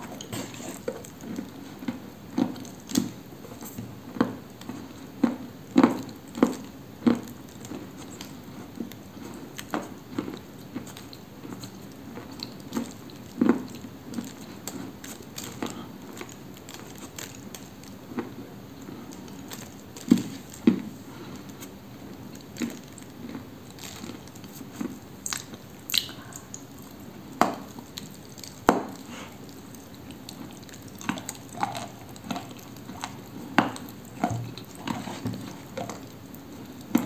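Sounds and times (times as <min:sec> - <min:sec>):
wet chewing: 0:00.0 - 0:37.0.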